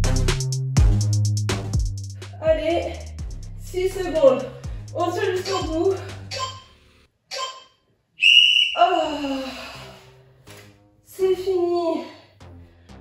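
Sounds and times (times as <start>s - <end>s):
high steady timer tone: 4.2s - 6.7s.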